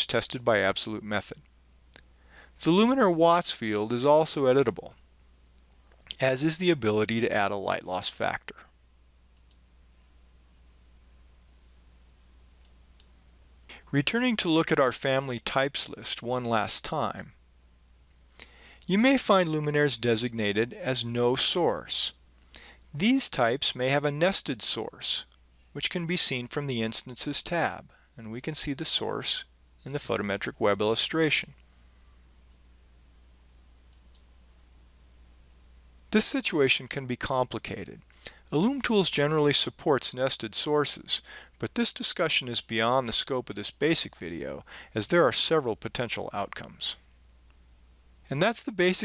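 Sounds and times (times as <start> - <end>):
faint low hum: 0.0 - 49.0
computer mouse clicks: 9.4 - 9.6.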